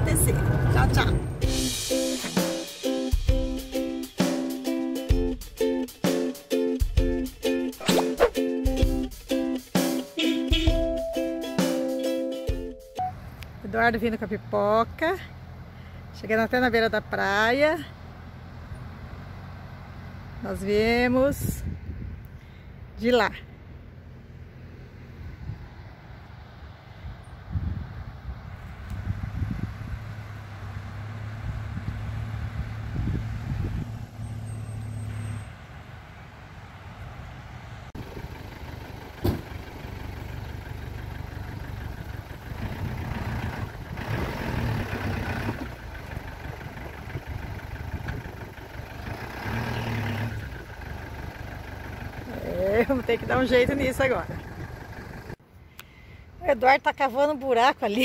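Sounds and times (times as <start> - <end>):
van engine running: 0.0 - 4.4, 12.5 - 55.5.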